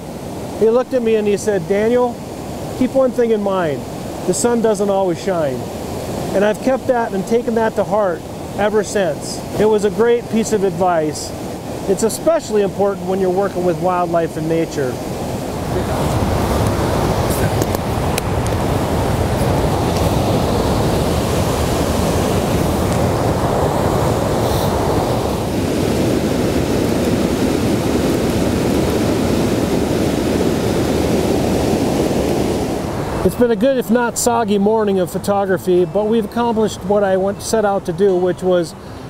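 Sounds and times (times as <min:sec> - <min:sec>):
fast-flowing water rushing: 0:00.0 - 0:39.0.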